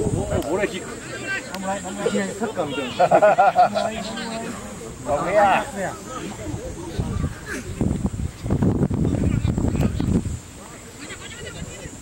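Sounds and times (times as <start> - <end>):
faint voices: 0.0 - 12.0
steady hiss: 0.0 - 12.0.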